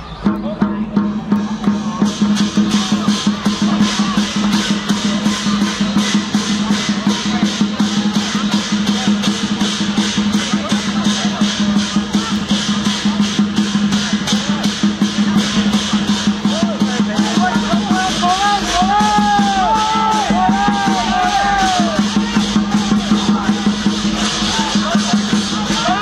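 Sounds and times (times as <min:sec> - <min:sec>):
drums and cymbals beating: 0:00.0 - 0:26.0.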